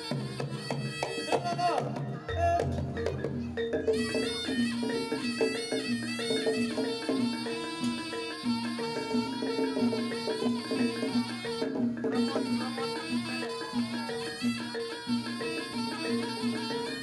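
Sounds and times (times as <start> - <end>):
shrill reed trumpet melody: 4.0 - 17.0.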